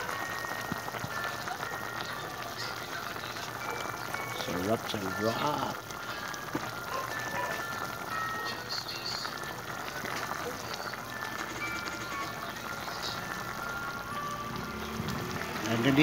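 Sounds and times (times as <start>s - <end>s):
pot simmering with bubbling hiss: 0.0s - 16.0s
soft background music: 0.0s - 16.0s.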